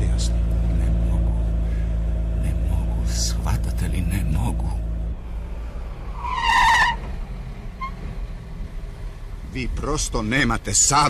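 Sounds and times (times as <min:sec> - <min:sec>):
car engine running: 0:00.0 - 0:11.0
high wavering squeal: 0:06.1 - 0:07.1.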